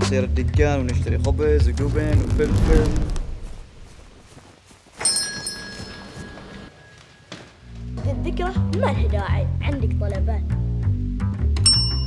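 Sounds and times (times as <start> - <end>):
bright bell-like chime: 5.0 - 7.0, 11.6 - 12.0.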